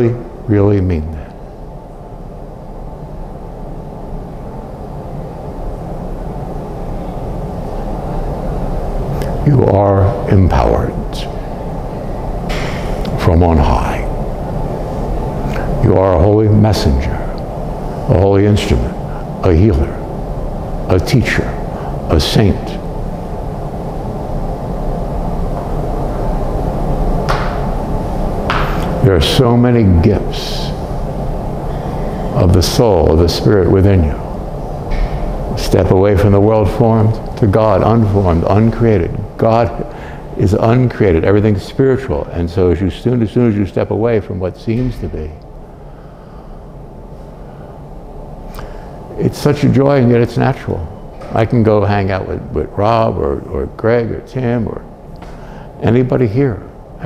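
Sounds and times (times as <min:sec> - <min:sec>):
low rumbling noise: 0:00.0 - 0:57.0.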